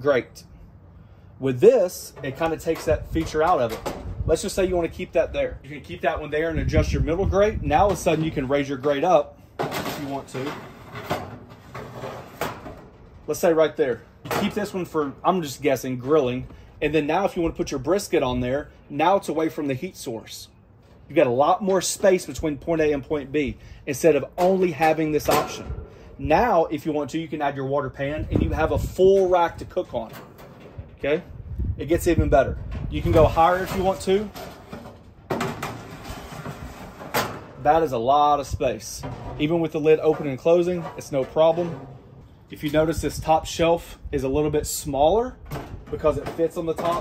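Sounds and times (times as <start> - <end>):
metal grate clanking: 1.9 - 4.8, 6.7 - 16.5, 24.4 - 27.0, 27.9 - 31.3, 32.0 - 43.7, 45.4 - 47.0.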